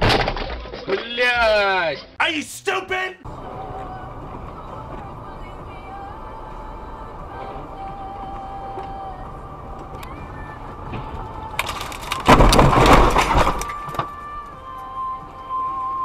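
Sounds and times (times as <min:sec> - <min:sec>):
car engine and tyre noise: 0:03.3 - 0:16.0
car crashing through deep snow: 0:11.6 - 0:13.9.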